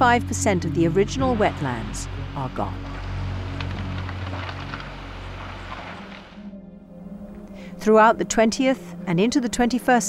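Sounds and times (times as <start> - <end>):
branches crackling: 0.0 - 7.8.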